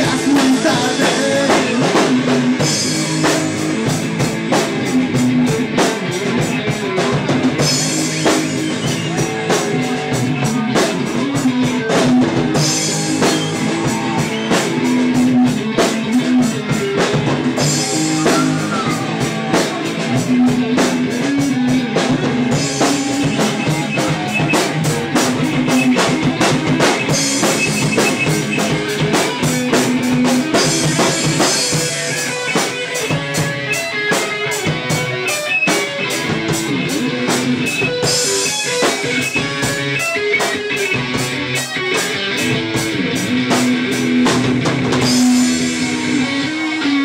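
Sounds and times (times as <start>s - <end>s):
drum kit fast beat: 0.0s - 47.0s
electric guitar held notes: 1.5s - 47.0s.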